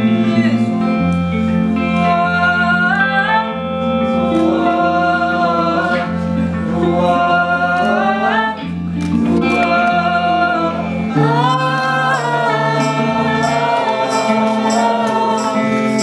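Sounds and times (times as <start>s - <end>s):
sparse acoustic backing: 0.0s - 16.0s
woman singing live: 1.4s - 16.0s
voices singing along: 1.8s - 16.0s.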